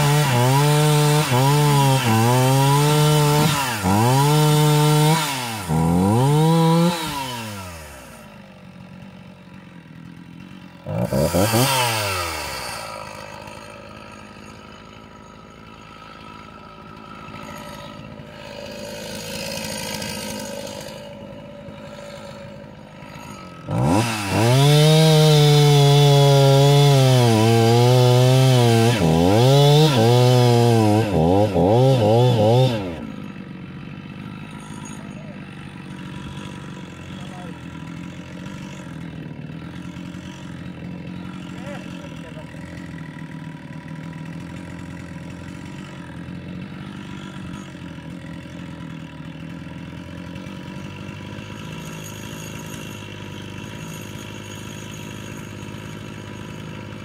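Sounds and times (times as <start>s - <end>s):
chainsaw cutting logs: 0.0s - 57.0s.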